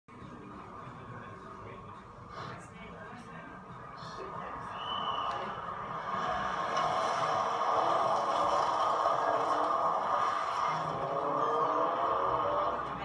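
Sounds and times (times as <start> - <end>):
rally car engine running hard: 5.1 - 13.0.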